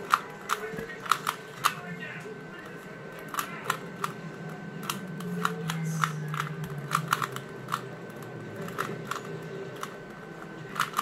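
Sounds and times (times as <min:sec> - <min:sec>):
puzzle cube twisting clicks: 0:00.0 - 0:01.8, 0:04.8 - 0:10.0, 0:10.7 - 0:11.0.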